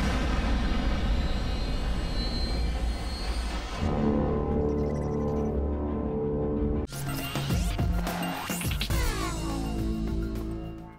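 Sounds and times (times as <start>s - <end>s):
rushing noise with deep rumble: 0.0s - 4.0s.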